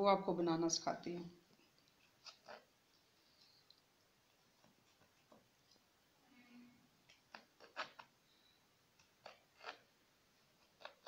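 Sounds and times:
knife cutting cucumber on board: 10.6s - 11.0s.

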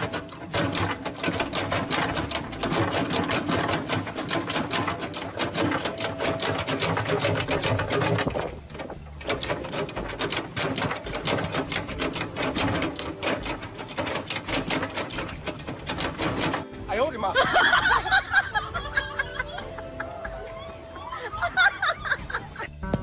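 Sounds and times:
machine clattering rapidly: 0.0s - 20.6s.

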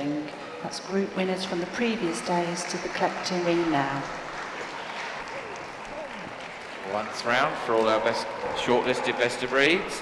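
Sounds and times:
audience applauding: 2.2s - 10.0s.

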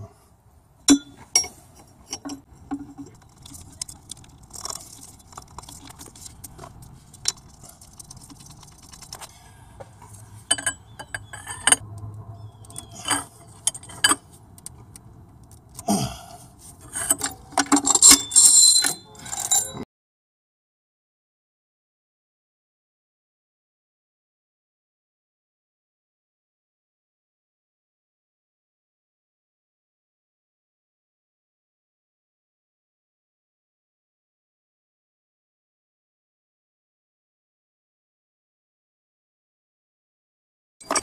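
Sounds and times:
metal tools clinking: 0.9s - 11.8s, 12.5s - 14.7s, 16.8s - 19.8s.

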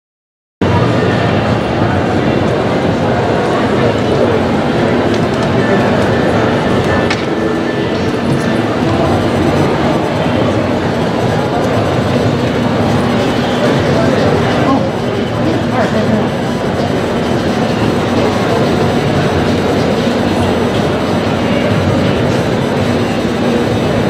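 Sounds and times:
many overlapping voices: 0.6s - 24.0s.

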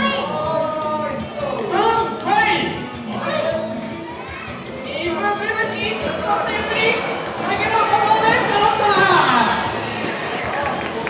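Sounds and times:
children calling out and chattering: 3.0s - 10.7s.

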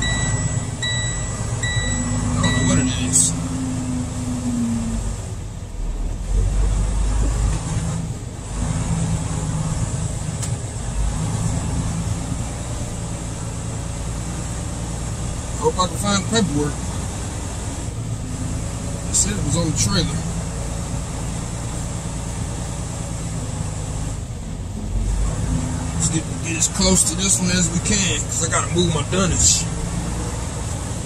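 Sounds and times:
repeating high beep: 0.0s - 3.0s
diesel truck engine running: 0.0s - 31.0s.

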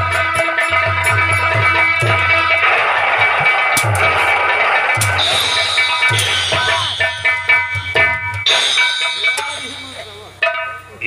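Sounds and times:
drum strokes: 0.0s - 11.0s
held melody notes: 0.0s - 11.0s.

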